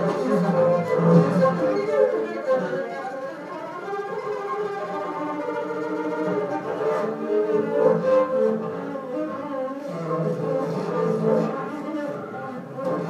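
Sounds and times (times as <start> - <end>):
bowed double bass: 0.0 - 3.0, 4.1 - 13.0.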